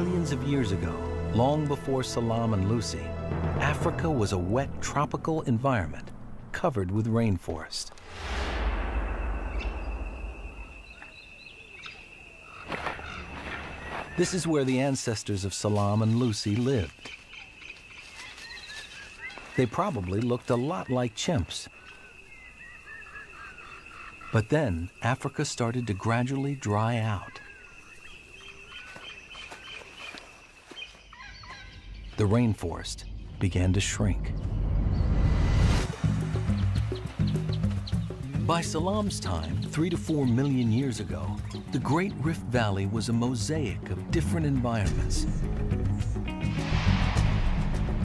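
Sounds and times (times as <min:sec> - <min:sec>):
low rushing swell: 0:07.9 - 0:11.3, 0:33.0 - 0:37.6, 0:46.2 - 0:48.0
bird chirps: 0:08.4 - 0:42.8.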